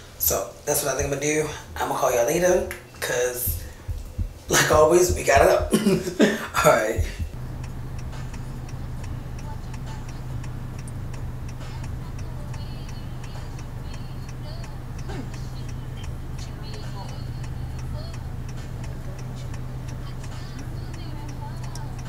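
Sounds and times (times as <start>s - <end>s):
turn signal ticking: 3.4s - 6.2s, 6.9s - 22.0s
car engine hum: 6.6s - 22.0s.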